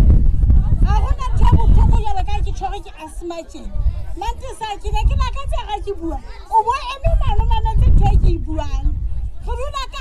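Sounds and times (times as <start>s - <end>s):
woman speaking into microphone: 0.6s - 10.0s.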